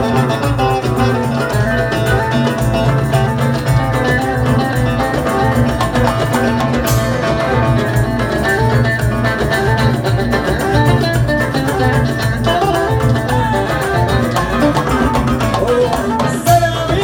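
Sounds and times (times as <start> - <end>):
electric bass guitar: 0.0 - 17.0
ouds playing a melody: 0.0 - 17.0
steady beat: 0.0 - 17.0.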